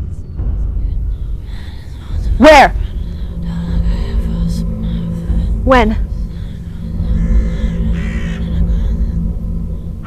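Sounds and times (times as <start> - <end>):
ominous music drone: 0.0 - 10.0
bird cawing: 1.1 - 10.0.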